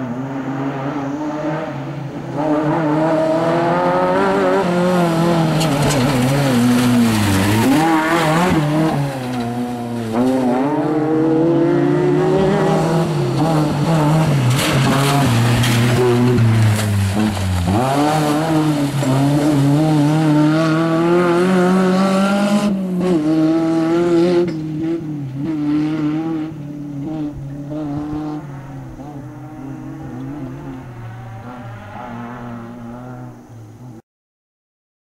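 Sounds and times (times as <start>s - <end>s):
rally car engine revving hard: 0.0s - 33.3s
tyres scrabbling on gravel: 5.3s - 10.3s, 14.3s - 19.4s.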